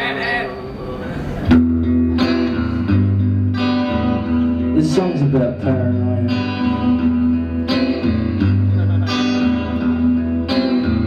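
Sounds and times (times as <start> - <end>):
electric guitar ringing chords: 1.5 - 11.0.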